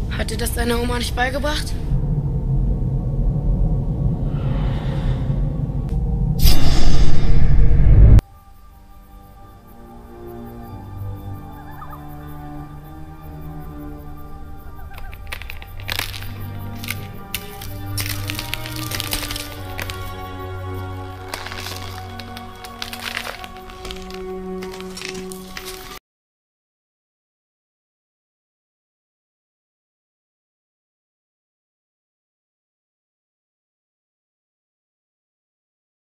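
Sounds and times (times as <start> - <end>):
deep rumbling drone: 0.0 - 8.2, 9.4 - 26.0
sharp clicks and cracks: 15.0 - 20.2.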